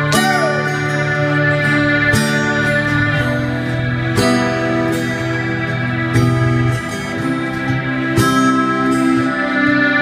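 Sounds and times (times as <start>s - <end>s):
rock band playing held chords: 0.0s - 10.0s.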